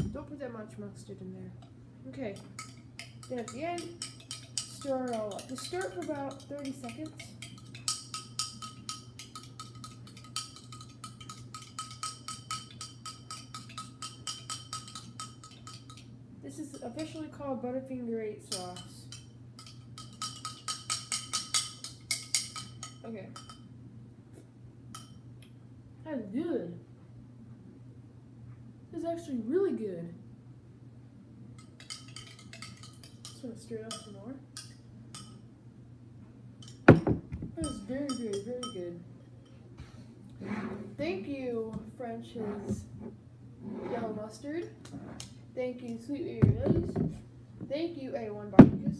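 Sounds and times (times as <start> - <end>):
spoon clinking against glass: 2.6 - 16.0, 18.5 - 23.7, 31.6 - 35.4, 37.6 - 38.9
light glass clinks: 37.6 - 39.6.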